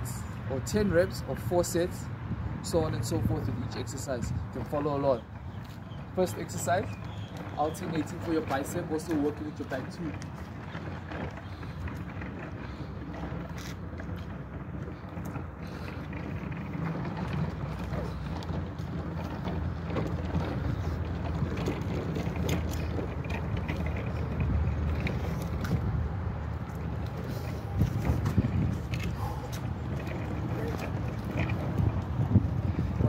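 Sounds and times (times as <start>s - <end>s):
low outdoor rumble: 0.0s - 33.0s.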